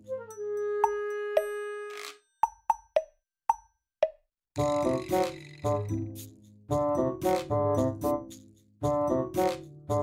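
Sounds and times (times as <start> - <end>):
background music with beat: 4.6 - 10.0.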